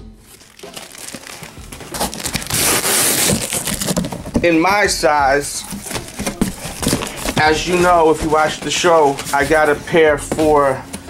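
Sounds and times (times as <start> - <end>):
cardboard box scraping and crinkling: 0.3 - 4.3, 5.7 - 9.9.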